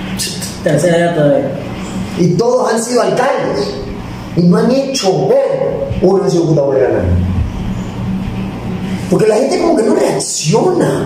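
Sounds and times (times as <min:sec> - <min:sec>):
vehicle engine droning: 0:05.7 - 0:10.3.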